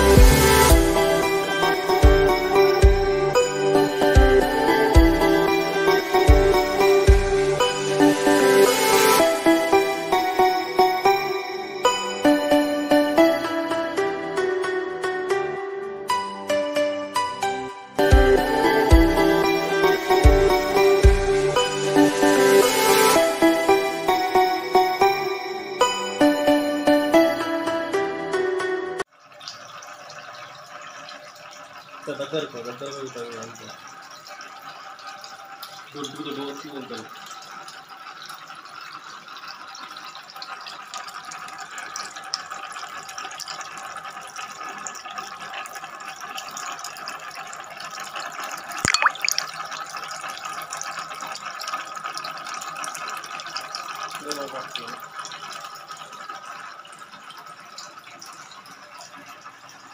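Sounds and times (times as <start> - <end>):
water trickling in a fountain: 0.0 - 14.6, 18.0 - 27.4, 29.0 - 59.9
fountain water splashing: 53.1 - 55.5.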